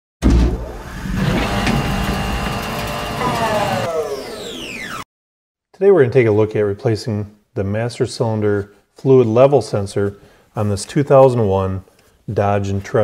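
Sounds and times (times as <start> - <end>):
low thump: 0.2 - 0.8.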